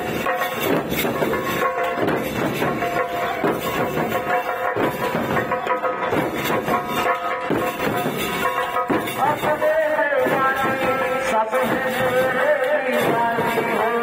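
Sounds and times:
street drum group drumming: 0.0 - 14.0.

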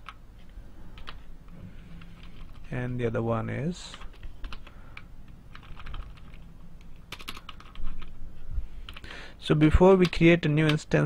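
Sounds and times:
keyboard typing: 0.9 - 2.7, 3.9 - 8.2, 8.8 - 9.1.

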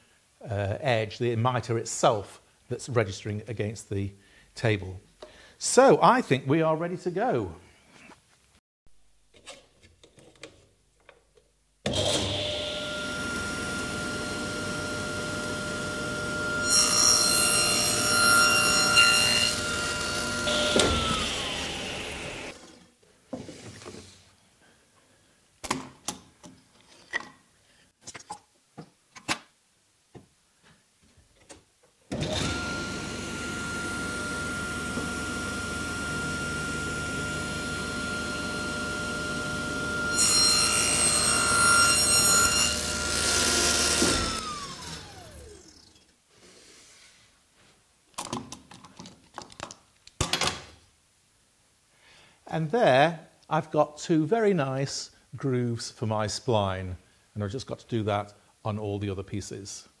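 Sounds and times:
saw winding down whine: 11.9 - 22.6, 32.2 - 46.0
table saw cutting wood: 11.9 - 22.8, 32.2 - 45.9.

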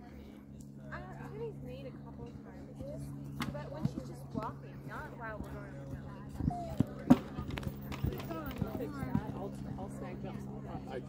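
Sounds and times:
horse hoofbeats cantering: 2.8 - 9.6.

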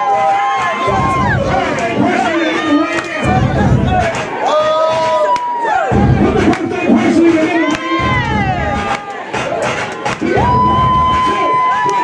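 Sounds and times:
long drawn-out yells: 0.0 - 3.0
crowd cheering and shouting: 0.0 - 12.0.

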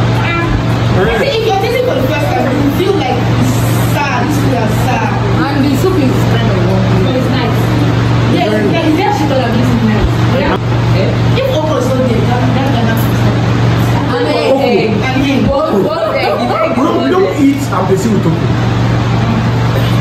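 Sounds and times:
indistinct voices talking: 0.0 - 20.0
steady low hum: 0.0 - 20.0.

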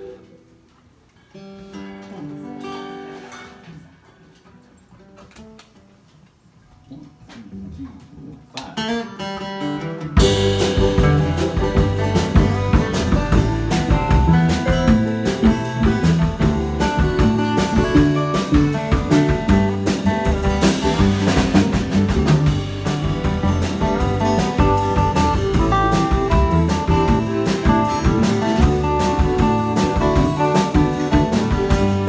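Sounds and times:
acoustic guitars playing: 0.0 - 6.0, 8.8 - 32.0
electric bass playing: 9.8 - 32.0.

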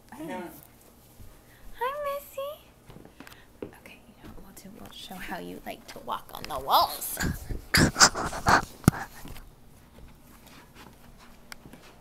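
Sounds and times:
soft rustling: 7.4 - 12.0.

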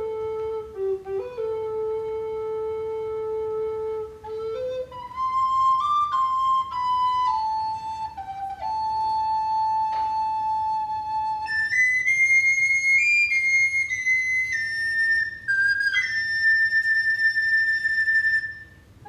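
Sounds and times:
recorders playing slow melody: 0.0 - 19.0.

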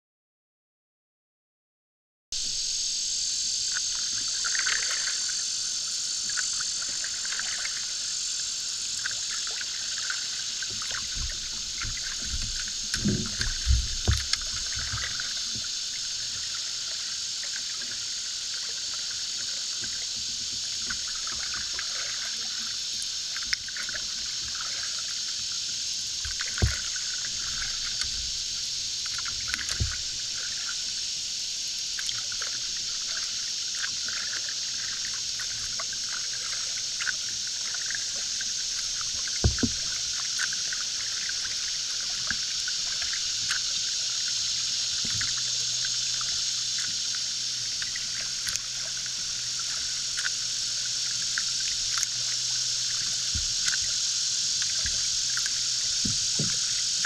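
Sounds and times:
steady high hiss: 2.4 - 57.0
paddle strokes in water: 3.7 - 57.0
dull knocks on canoe hull: 11.1 - 15.0, 39.4 - 39.8.

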